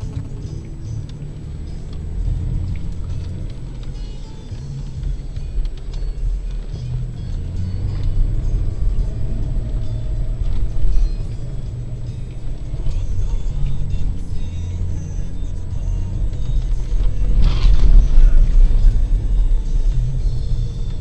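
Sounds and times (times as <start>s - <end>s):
engine rumbling: 0.0s - 21.0s
music playing: 0.0s - 21.0s.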